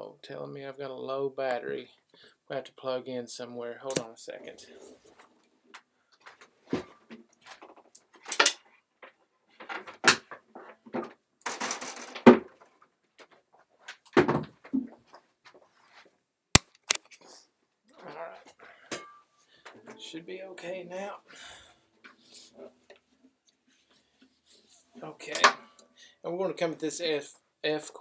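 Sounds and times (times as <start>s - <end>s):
guitar handling knocks and rustles: 6.2s - 11.2s, 11.9s - 15.7s
sharp click: 16.6s - 17.0s.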